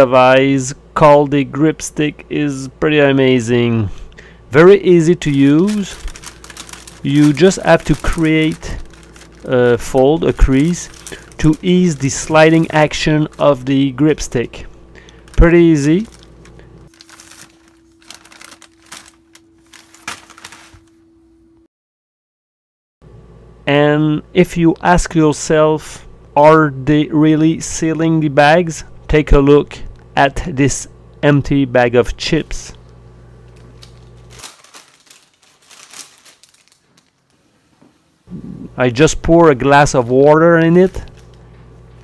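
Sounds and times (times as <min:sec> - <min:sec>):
faint steady hum: 0:00.0 - 0:21.7, 0:23.1 - 0:42.0
chip bag crinkling: 0:04.9 - 0:20.9, 0:33.4 - 0:37.5, 0:40.0 - 0:41.5.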